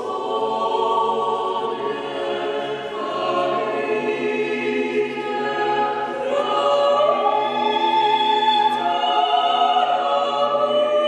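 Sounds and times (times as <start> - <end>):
choir singing held chords: 0.0 - 11.0.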